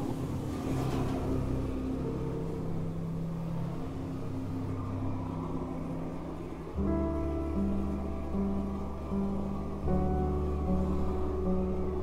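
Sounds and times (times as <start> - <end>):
low drone of held tones: 0.0 - 12.0
loud low musical tone: 0.9 - 12.0.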